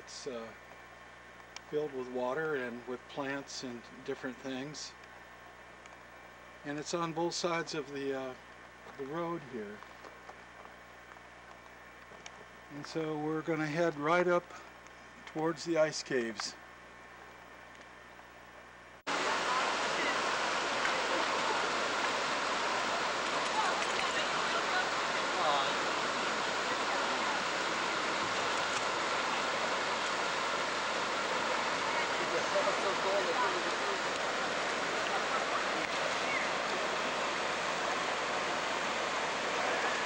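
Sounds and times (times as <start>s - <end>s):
stream rushing over rocks: 19.1s - 40.0s.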